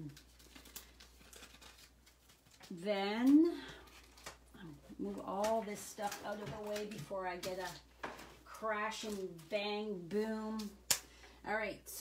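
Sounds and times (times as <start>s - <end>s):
packaging rustling: 0.0s - 9.6s.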